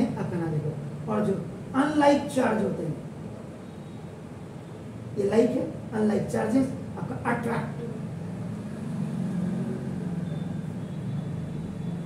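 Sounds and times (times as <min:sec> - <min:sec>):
faint high whine: 0:00.0 - 0:08.5.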